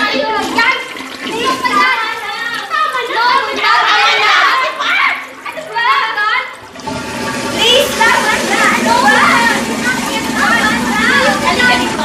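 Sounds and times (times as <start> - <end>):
overlapping young voices: 0.0 - 12.0
urinal flushing: 0.0 - 12.0.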